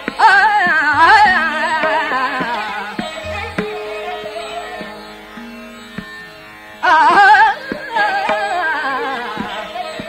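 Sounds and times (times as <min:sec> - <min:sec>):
held accompanying tones: 0:00.0 - 0:10.0
tabla strokes: 0:00.0 - 0:10.0
woman singing: 0:00.1 - 0:05.1, 0:06.8 - 0:10.0.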